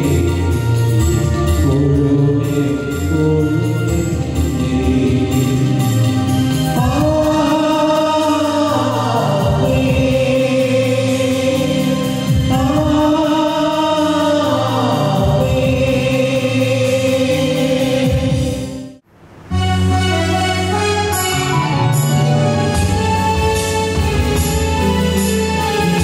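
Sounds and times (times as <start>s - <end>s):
sustained instrumental accompaniment: 0.0s - 26.0s
choir singing a hymn: 6.8s - 18.8s.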